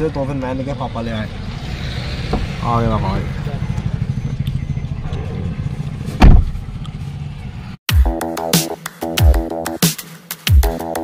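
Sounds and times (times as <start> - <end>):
car engine and road noise: 0.0 - 7.9
loud thump: 6.2 - 6.6.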